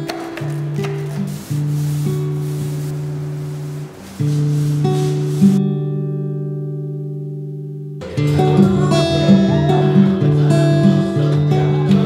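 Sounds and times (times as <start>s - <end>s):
paint roller rubbing in tray: 0.0s - 5.6s.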